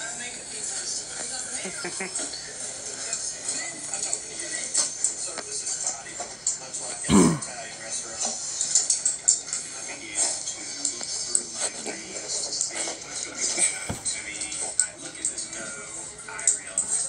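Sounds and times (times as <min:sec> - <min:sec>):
music: 0:00.0 - 0:17.0
indistinct voices: 0:07.1 - 0:07.5
dog scuffling on a rug: 0:13.4 - 0:14.2.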